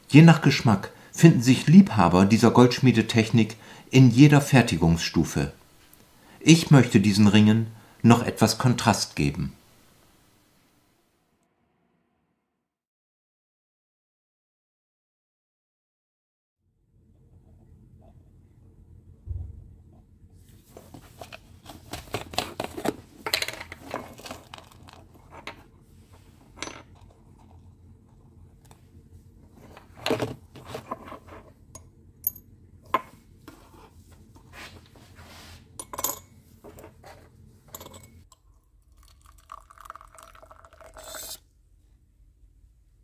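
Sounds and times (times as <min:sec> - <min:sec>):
liquid pouring into beaker: 0:38.3 - 0:41.4.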